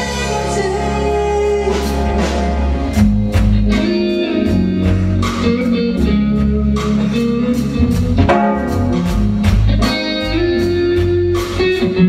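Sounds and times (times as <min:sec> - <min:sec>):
bass guitar: 0:00.0 - 0:12.0
drum kit steady beat: 0:00.0 - 0:12.0
electric guitar: 0:00.0 - 0:12.0.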